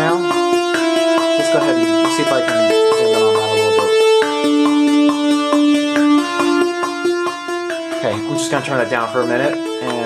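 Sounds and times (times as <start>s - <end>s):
held low synth notes: 0.0s - 10.0s
synthesizer arpeggio melody: 0.0s - 10.0s.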